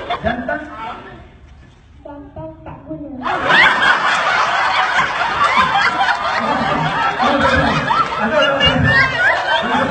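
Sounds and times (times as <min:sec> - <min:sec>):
people laughing loudly: 0:00.0 - 0:01.1, 0:03.2 - 0:09.9.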